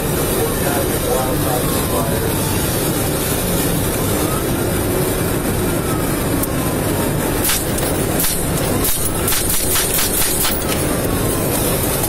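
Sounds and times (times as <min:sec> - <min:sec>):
car engine driving fast: 0:00.0 - 0:12.0
road and wind noise in car: 0:00.0 - 0:12.0.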